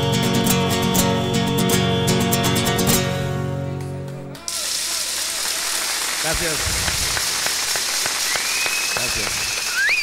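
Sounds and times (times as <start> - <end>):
applause: 3.7 - 10.0
high steady whistle: 8.2 - 10.0.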